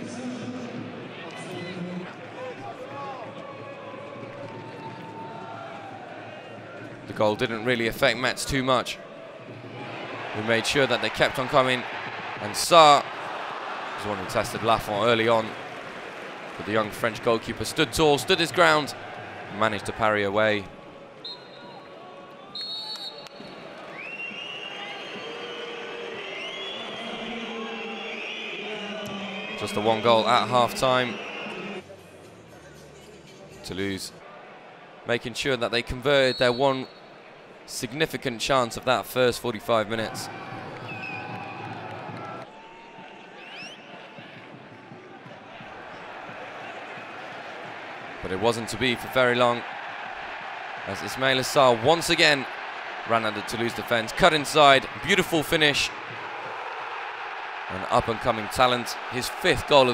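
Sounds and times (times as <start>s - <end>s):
stadium crowd din: 0.0s - 59.9s
individual crowd calls: 9.6s - 31.8s, 39.8s - 59.9s
referee's whistle blast: 21.2s - 21.9s, 22.5s - 31.8s
fans whistling: 22.5s - 31.8s.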